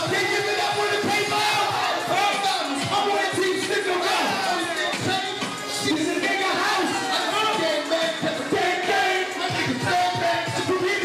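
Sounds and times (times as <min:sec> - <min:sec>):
crowd shouting and chanting: 0:00.0 - 0:11.0
loud hip-hop beat: 0:00.0 - 0:11.0.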